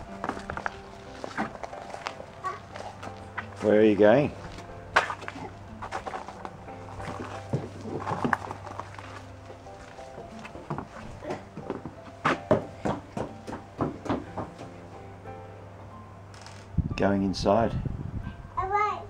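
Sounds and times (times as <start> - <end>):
toddler footsteps on wooden deck: 0.0 - 14.9.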